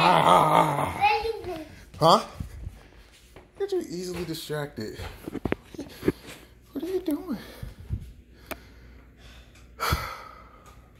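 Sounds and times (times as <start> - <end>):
person gasping: 9.2 - 10.8.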